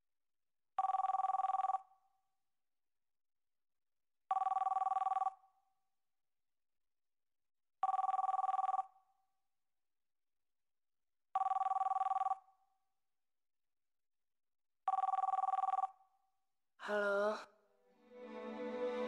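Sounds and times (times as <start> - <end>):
telephone ringing: 0.8 - 1.8, 7.8 - 8.9, 11.4 - 12.4, 14.9 - 15.9.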